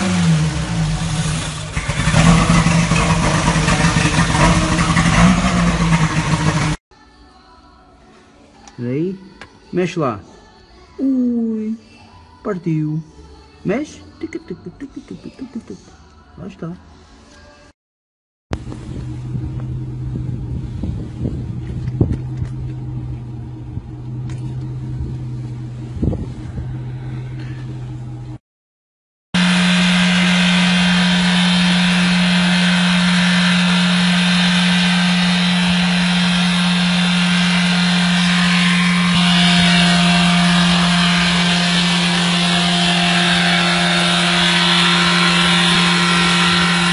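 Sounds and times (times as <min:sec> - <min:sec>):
car engine humming: 0:00.0 - 0:06.8, 0:18.5 - 0:28.4, 0:29.4 - 0:46.9
loud rough engine drone: 0:00.0 - 0:06.8, 0:18.5 - 0:28.4, 0:29.4 - 0:46.9.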